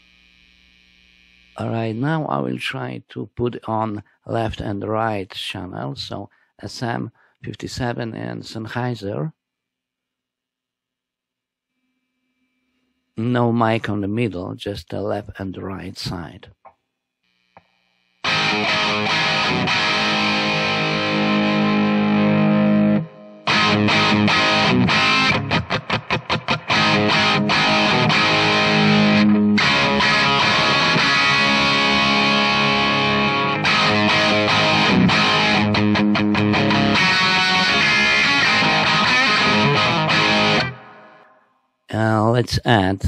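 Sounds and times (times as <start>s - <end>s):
distorted electric guitar chords: 17.4s - 41.4s.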